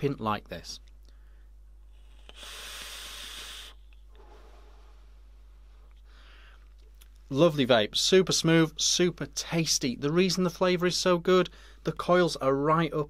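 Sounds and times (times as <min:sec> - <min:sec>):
exhale of vapour: 0:01.1 - 0:06.6
breathy hiss of air drawn: 0:01.9 - 0:05.3.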